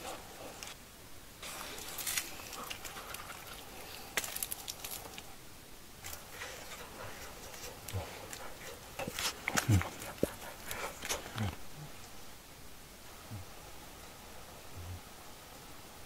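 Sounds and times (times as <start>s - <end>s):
rustling: 0.0s - 0.8s, 1.4s - 5.4s, 6.0s - 11.7s.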